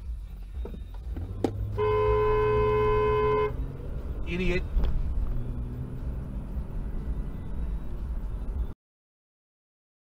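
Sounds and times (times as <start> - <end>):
car engine rumble: 0.0 - 8.8
car horn honk: 1.7 - 3.7.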